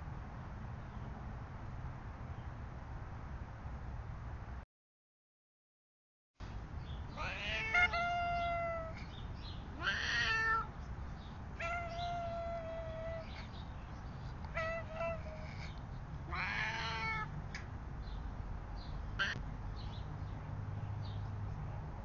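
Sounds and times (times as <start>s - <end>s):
cat meowing: 7.2s - 9.0s, 9.8s - 10.7s, 11.6s - 13.4s, 14.5s - 15.6s, 16.3s - 17.3s.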